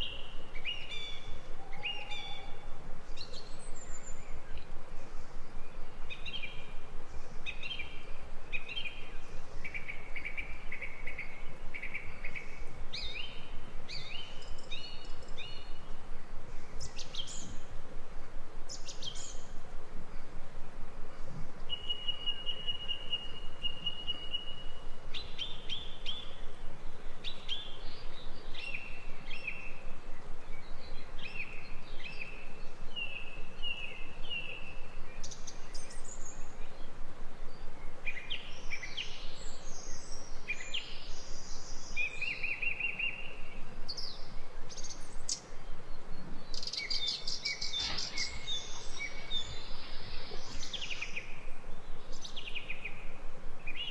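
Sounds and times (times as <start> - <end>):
background hiss: 0.0 - 53.9
songbirds chirping: 0.0 - 53.9.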